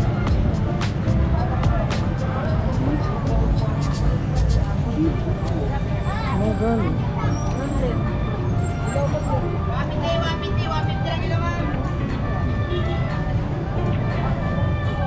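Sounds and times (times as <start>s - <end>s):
people talking: 0.0s - 15.0s
road traffic rumble: 0.0s - 15.0s.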